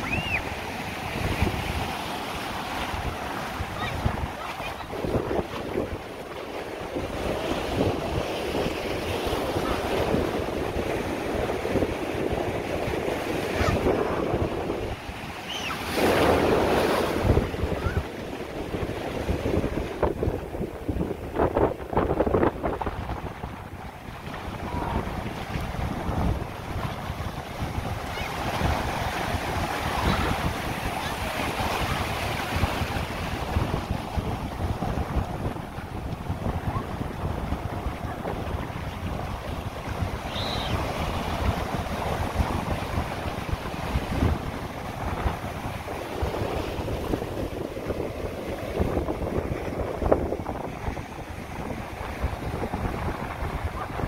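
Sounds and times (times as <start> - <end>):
ocean surf breaking: 0.0 - 54.0
wind buffeting microphone: 0.0 - 54.0.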